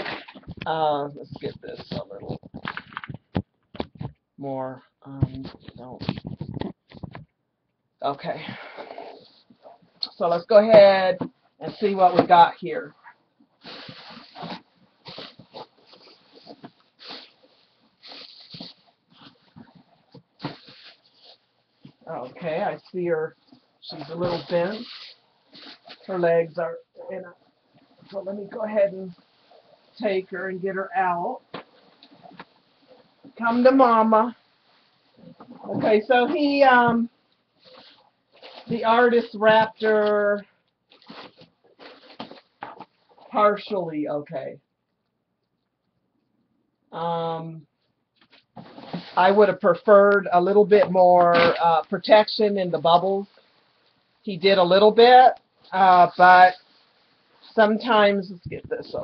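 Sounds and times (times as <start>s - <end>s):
plastic bags and bubble wrap rustling: 13.6s - 26.4s, 31.2s - 43.3s, 48.2s - 52.0s.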